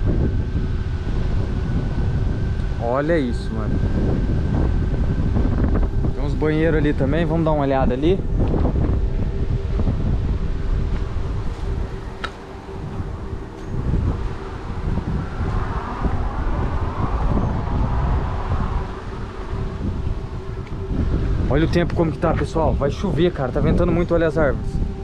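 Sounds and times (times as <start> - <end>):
faint steady hum: 0.0 - 25.0
wind buffeting microphone: 0.0 - 25.0.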